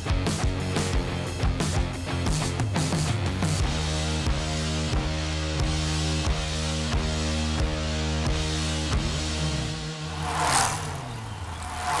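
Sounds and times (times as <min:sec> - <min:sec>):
bicycles whooshing past: 0:10.0 - 0:12.0.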